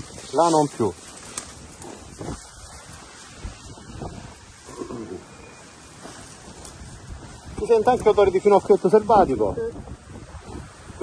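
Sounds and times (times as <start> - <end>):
rustling of dry brush: 0.0 - 11.0
wind on microphone: 0.0 - 11.0.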